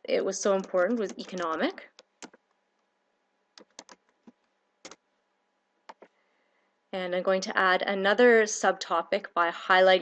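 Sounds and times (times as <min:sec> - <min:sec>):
computer keyboard keystrokes: 0:00.6 - 0:02.4, 0:03.6 - 0:05.0, 0:05.9 - 0:06.1.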